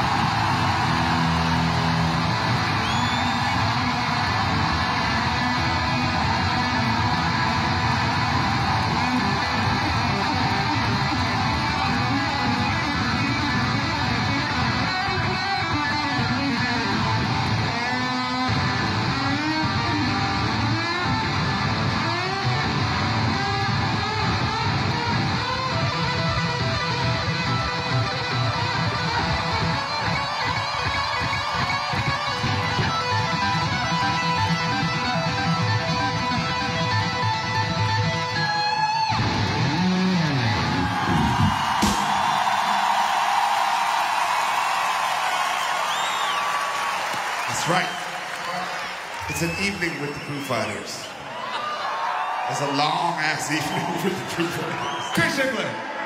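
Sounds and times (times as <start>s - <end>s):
electric guitar solo: 0.0s - 43.0s.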